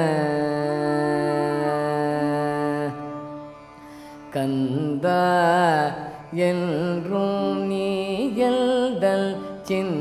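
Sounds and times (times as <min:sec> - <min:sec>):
man singing with ornaments: 0:00.0 - 0:03.2, 0:04.3 - 0:10.0
tanpura drone: 0:00.0 - 0:10.0.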